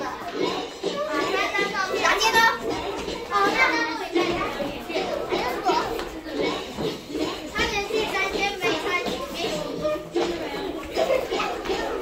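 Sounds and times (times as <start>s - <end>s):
children chattering and calling out: 0.0s - 12.0s
music playing: 0.0s - 12.0s.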